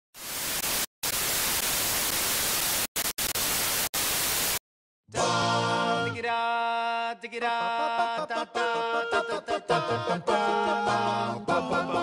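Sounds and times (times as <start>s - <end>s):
television static hiss: 0.2s - 4.6s.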